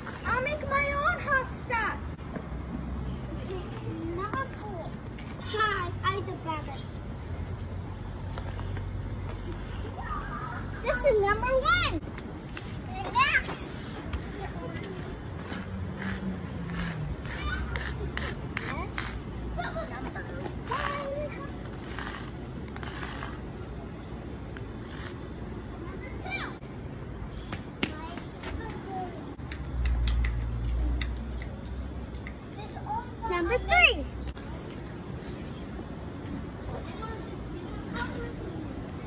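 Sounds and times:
faint children's voices: 12.6s - 29.6s, 32.4s - 39.0s.

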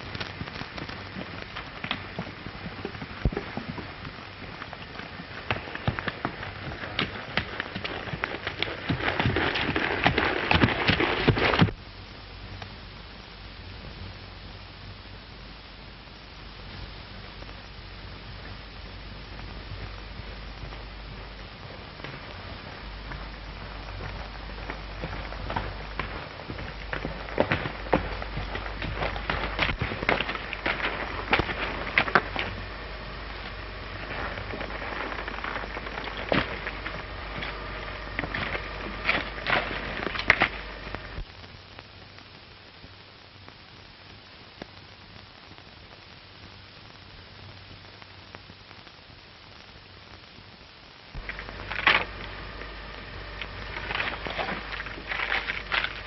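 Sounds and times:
horse hooves clopping on stones: 0.0s - 11.9s, 16.6s - 41.9s, 51.2s - 56.0s
film soundtrack hiss: 0.0s - 56.0s
low hum: 0.0s - 56.0s.

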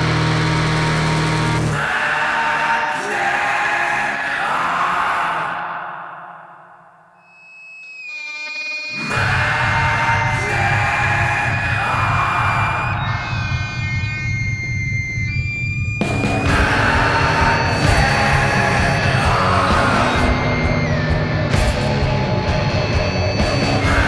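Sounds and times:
instrumental rock music: 0.0s - 1.8s, 13.0s - 24.0s.

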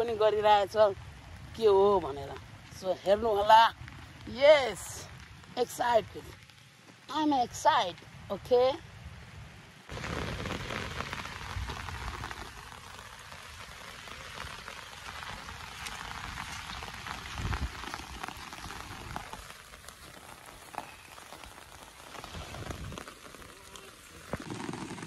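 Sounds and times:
steady rain falling: 0.0s - 25.0s.

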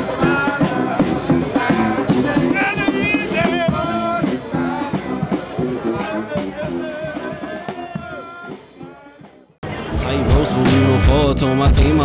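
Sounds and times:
brass band playing: 0.0s - 12.0s
drum and sousaphone beat: 0.0s - 12.0s.

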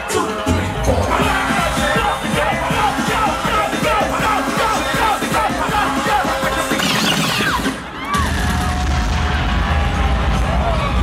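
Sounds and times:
bass-heavy dance music: 0.0s - 11.0s
crowd whooping and yelling: 0.0s - 11.0s.

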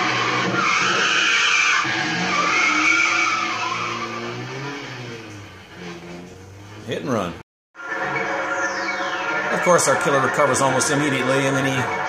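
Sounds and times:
tyres screeching: 0.0s - 7.4s
car engine running: 1.5s - 7.4s.

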